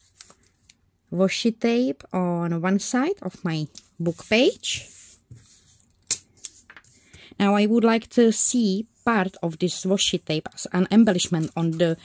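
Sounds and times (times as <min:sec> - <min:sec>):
faint rubbing of paper: 0:04.0 - 0:05.9.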